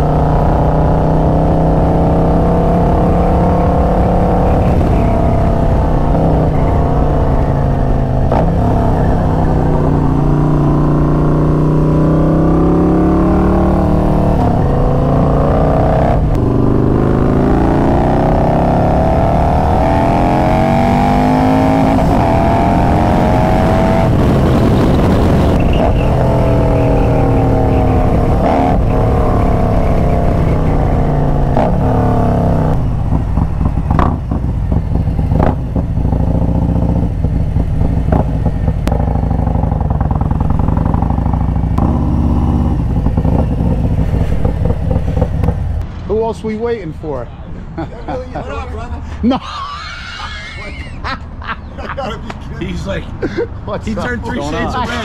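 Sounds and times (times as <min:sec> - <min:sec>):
motorcycle engine accelerating: 0:00.0 - 0:46.0.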